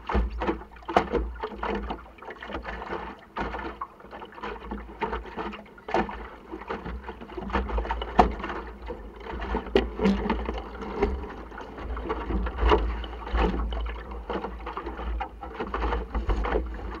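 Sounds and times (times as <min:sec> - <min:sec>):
knocks from boat: 0:00.0 - 0:02.0, 0:04.6 - 0:17.0
water splashing against hull: 0:00.0 - 0:17.0.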